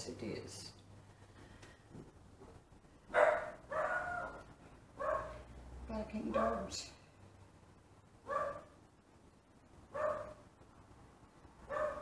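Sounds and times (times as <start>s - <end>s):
dog barking high-pitched: 3.1s - 4.4s, 5.0s - 5.4s, 6.3s - 6.7s, 8.3s - 8.8s, 9.9s - 10.4s, 11.7s - 12.0s.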